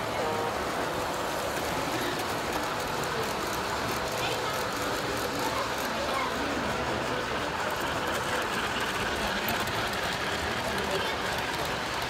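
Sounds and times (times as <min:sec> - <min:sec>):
model train rumbling on rails: 0:00.0 - 0:12.0.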